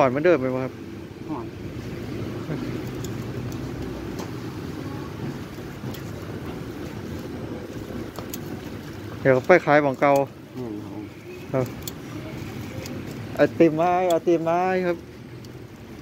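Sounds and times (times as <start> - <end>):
street traffic rumble: 0.0 - 16.0.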